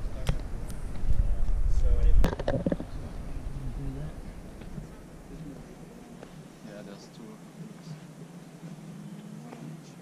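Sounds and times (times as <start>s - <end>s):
low rumble on microphone: 0.0s - 5.6s
faint indistinct voices: 0.0s - 10.0s.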